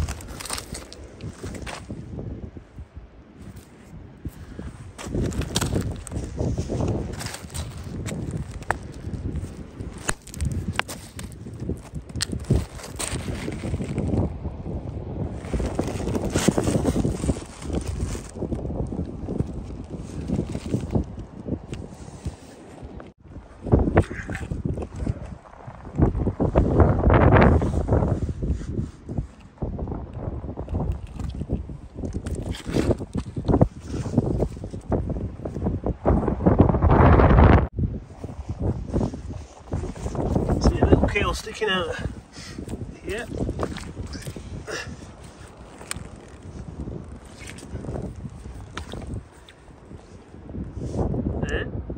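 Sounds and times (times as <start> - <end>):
pebbles clicking underfoot: 0.0 - 1.9, 5.0 - 14.2
boots crunching on shingle: 0.0 - 2.0
wind buffeting microphone: 0.0 - 51.9.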